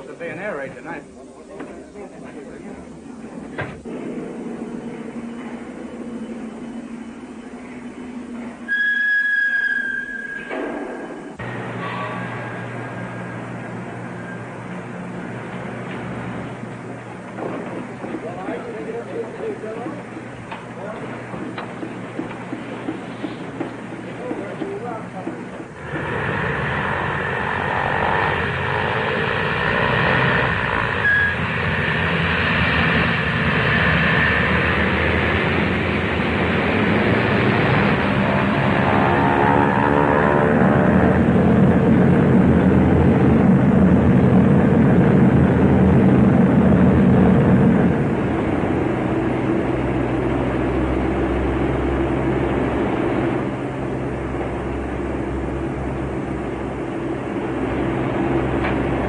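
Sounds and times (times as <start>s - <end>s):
piston aircraft engines droning: 0.0s - 59.0s.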